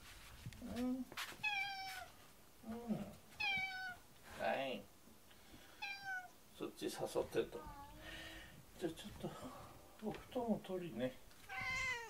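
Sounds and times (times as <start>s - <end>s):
cat meowing: 1.4s - 2.1s, 3.4s - 4.0s, 5.8s - 6.4s, 11.4s - 12.0s.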